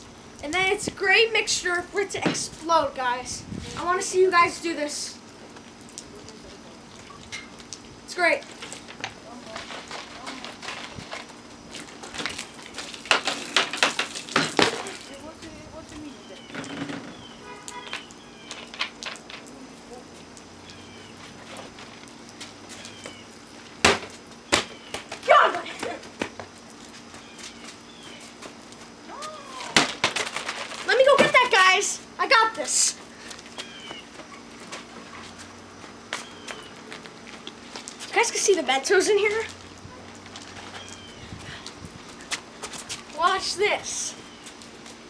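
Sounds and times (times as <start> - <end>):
plastic bottles shaken and handled: 8.5 - 15.2, 29.6 - 32.9.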